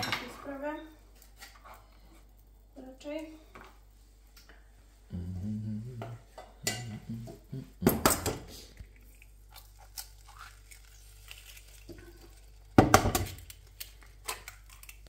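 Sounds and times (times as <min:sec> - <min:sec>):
dishes and utensils clattering: 0:00.0 - 0:00.5, 0:06.0 - 0:08.5.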